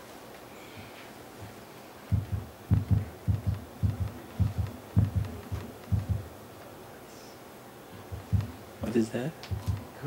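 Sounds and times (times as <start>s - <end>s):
heartbeat-like double thumps: 2.1s - 6.3s, 8.1s - 8.6s, 9.5s - 9.9s.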